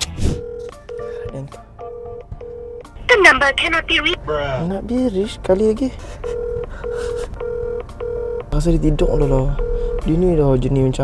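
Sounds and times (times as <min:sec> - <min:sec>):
phone ringback tone: 0:00.3 - 0:04.2, 0:06.2 - 0:08.6, 0:09.5 - 0:10.2
recorded voice message: 0:03.1 - 0:04.5.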